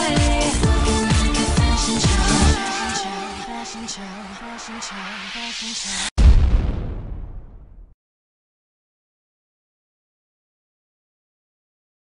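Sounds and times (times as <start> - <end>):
background music: 0.0 - 4.6
deep boom sound effect: 6.2 - 8.0.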